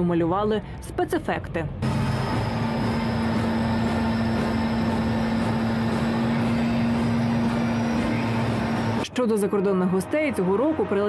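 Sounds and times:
tank engine rumbling: 1.6s - 9.0s.

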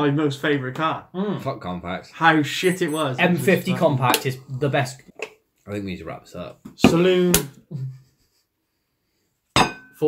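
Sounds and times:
glass bottle clinking on wooden table: 9.6s - 10.0s.

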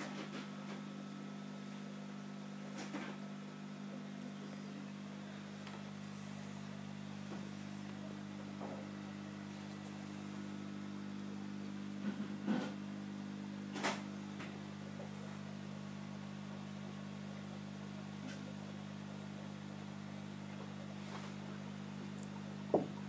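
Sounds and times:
aquarium pump hum: 0.0s - 23.0s.

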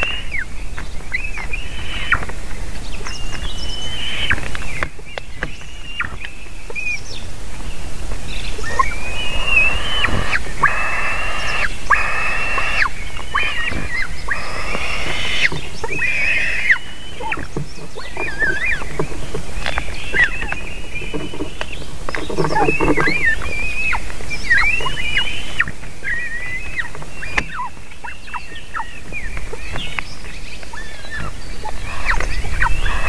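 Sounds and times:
eagle chicks begging calls: 0.0s - 33.0s.

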